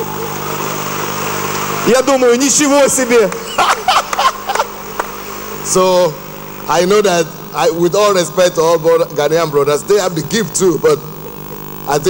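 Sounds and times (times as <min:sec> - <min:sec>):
low hum of held pitches: 0:00.0 - 0:12.0
man speaking: 0:01.8 - 0:03.4, 0:05.6 - 0:11.1.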